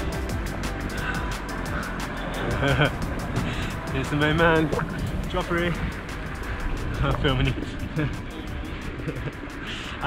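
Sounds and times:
background music: 0.0s - 10.0s
wind: 0.0s - 10.0s.

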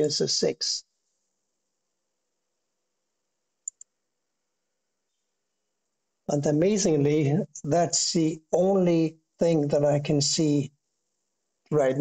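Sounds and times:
computer mouse double-click: 3.6s - 3.9s.

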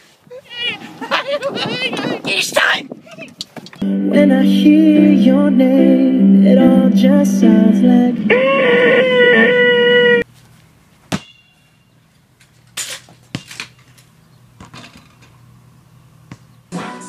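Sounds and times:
music: 3.8s - 8.3s, 16.7s - 17.0s.

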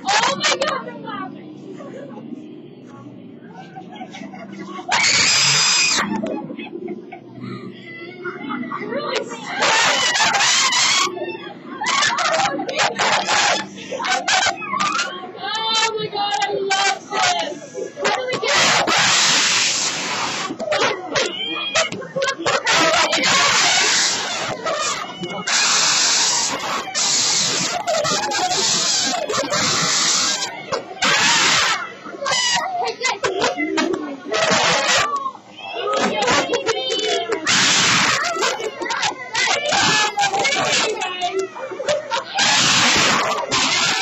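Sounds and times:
child screaming: 4.9s - 6.2s, 9.4s - 15.9s, 20.7s - 33.6s, 34.3s - 44.0s
harsh hissing buzz with whine: 16.2s - 33.3s, 37.4s - 41.3s, 42.0s - 44.0s.

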